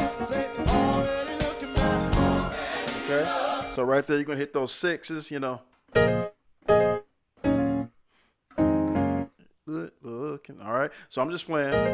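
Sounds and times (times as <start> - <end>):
piano chords: 0.0 - 3.8, 5.9 - 9.4, 11.7 - 11.9.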